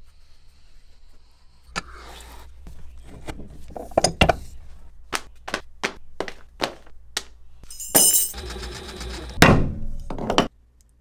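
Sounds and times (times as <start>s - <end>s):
ringing metallic clink: 7.7s - 8.4s.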